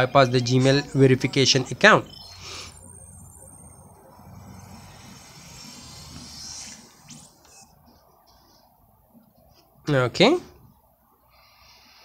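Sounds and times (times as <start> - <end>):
low steady hum: 0.0 - 11.2.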